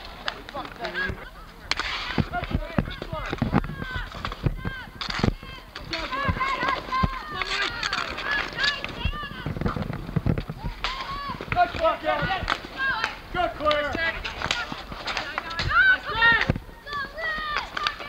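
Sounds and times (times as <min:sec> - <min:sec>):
players shouting: 0:00.0 - 0:09.7, 0:10.5 - 0:18.0
sticks and ball clacking: 0:00.0 - 0:18.0.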